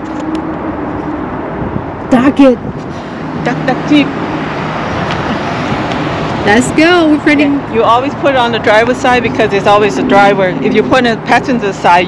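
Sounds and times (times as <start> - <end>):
traffic noise: 0.0 - 12.0.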